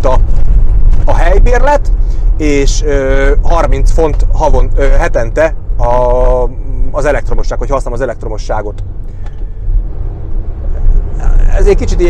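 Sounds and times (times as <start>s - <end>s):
low vehicle rumble: 0.0s - 12.0s.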